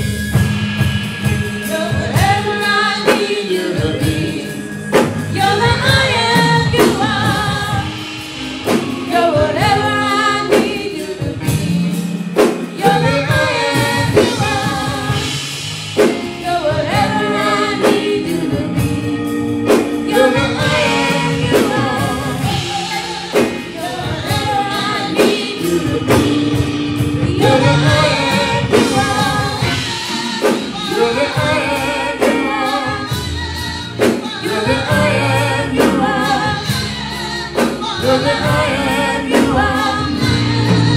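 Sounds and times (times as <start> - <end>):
group singing gospel song: 0.0 - 40.9
held bass notes: 3.8 - 40.9.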